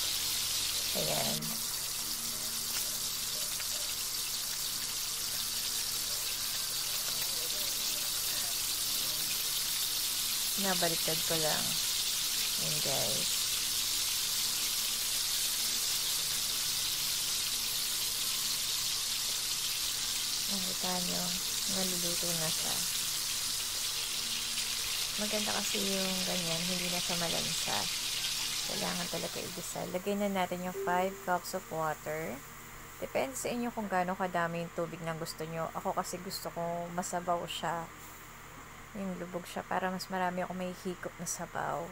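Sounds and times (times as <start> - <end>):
chicken sizzling in hot oil: 0.0 - 34.1.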